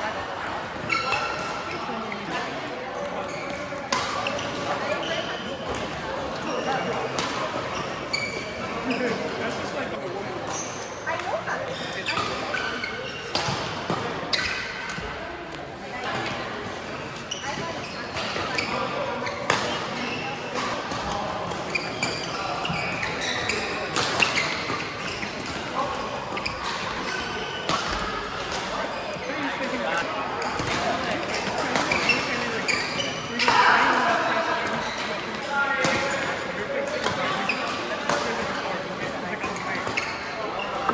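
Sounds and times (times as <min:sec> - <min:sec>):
voices in echoing hall: 0:00.0 - 0:40.9.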